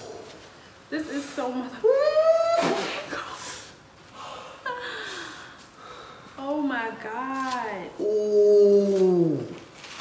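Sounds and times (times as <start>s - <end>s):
person saying ooh: 1.8s - 2.9s, 8.0s - 9.6s.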